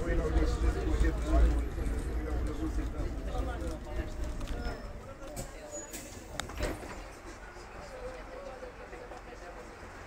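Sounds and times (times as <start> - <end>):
bus engine rumble: 0.0 - 10.0
passengers talking: 0.0 - 10.0.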